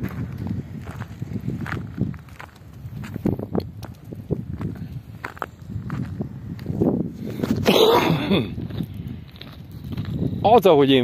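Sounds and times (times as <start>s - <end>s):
footsteps on stony ground: 0.0s - 11.0s.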